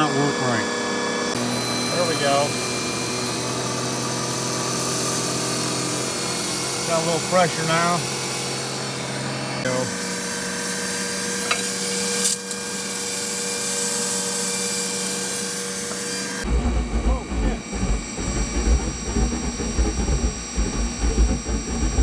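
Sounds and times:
motor hum: 0.0s - 22.0s
burner rumbling: 16.4s - 22.0s.

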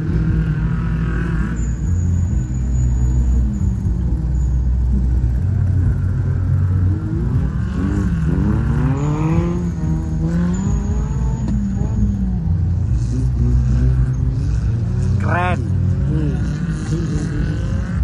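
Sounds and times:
engine revving: 0.0s - 18.0s.

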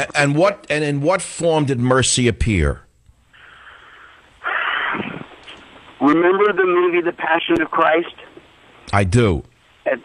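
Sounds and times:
faint breathing: 3.2s - 5.7s.

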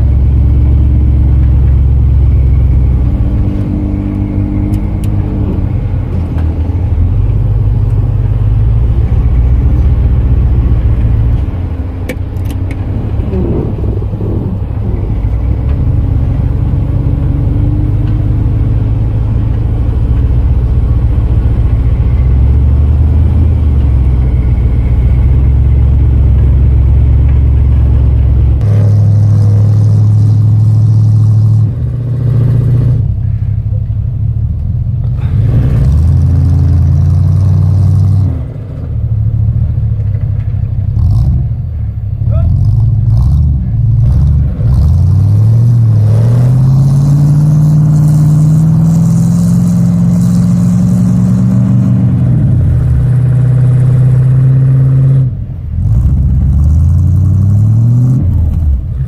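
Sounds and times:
truck engine under load: 0.0s - 59.0s.

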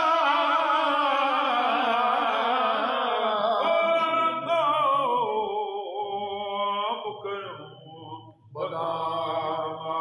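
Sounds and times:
men chanting devotional song: 0.0s - 10.0s.

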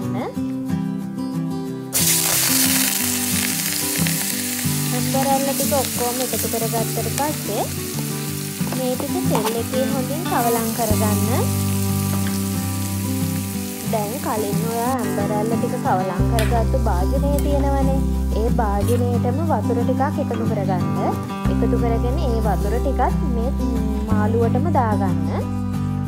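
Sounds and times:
food frying in hot oil: 2.0s - 15.2s.

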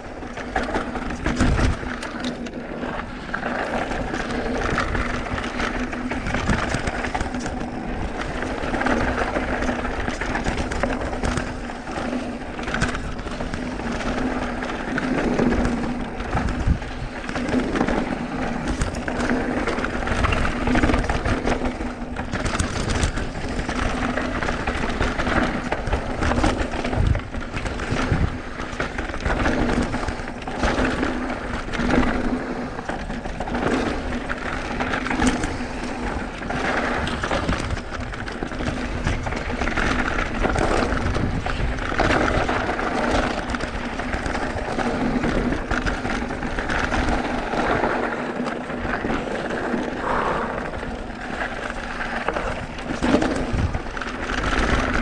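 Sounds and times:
bike rattling over bumps: 0.0s - 55.0s
bike tyres on dirt and rocks: 0.0s - 55.0s.

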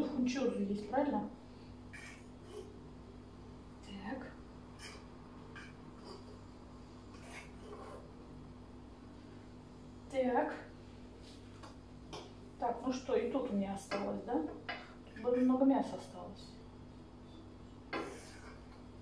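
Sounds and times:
fork scraping frying pan: 1.9s - 2.8s, 4.8s - 6.4s, 7.1s - 8.1s, 18.0s - 18.7s.

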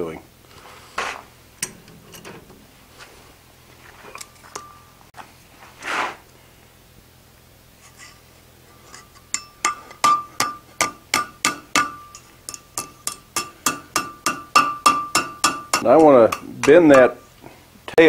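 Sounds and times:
hammer striking hot steel on anvil: 1.6s - 2.6s, 9.0s - 17.3s.

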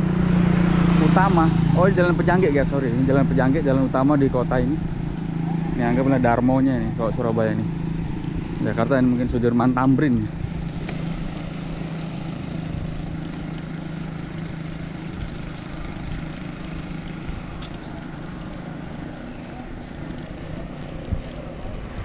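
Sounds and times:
bicycle tyre noise on road: 0.0s - 22.0s
rushing wind: 0.0s - 22.0s.

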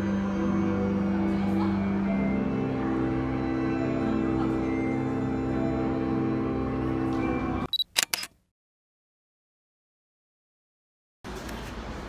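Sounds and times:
ambient organ-like music: 0.0s - 7.7s
camera shutter click: 7.7s - 8.4s.

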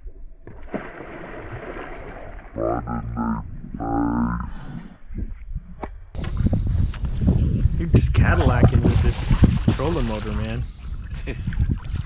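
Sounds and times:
wind rumble on microphone: 4.5s - 12.0s.

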